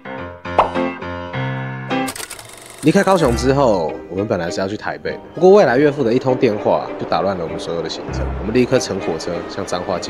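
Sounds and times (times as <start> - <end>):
film reel clicking rattle: 2.0 - 3.4
man speaking: 2.9 - 4.6, 5.6 - 10.0
keyboard intro music: 3.0 - 4.4, 5.1 - 9.5.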